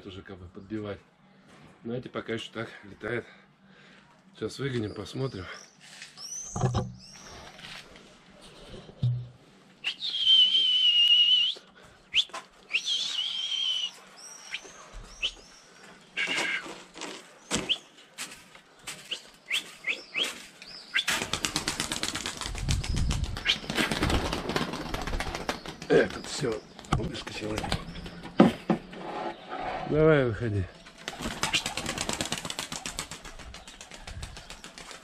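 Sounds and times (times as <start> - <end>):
person whistling: 9.8 - 14.0
pigeon wings fluttering: 21.0 - 28.0, 30.9 - 35.0.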